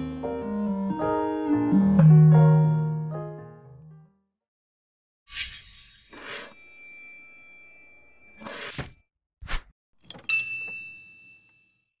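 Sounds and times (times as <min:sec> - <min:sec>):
high chime ding: 0:05.6 - 0:08.4.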